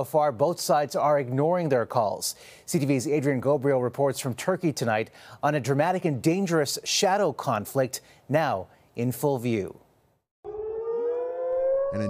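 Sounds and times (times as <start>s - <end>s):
air-raid siren wailing: 10.4s - 12.0s.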